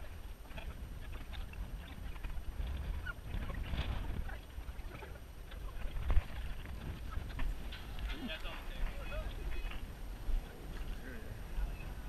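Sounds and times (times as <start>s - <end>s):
faint distant calls: 0.0s - 12.0s
wind rumbling on microphone: 0.0s - 12.0s.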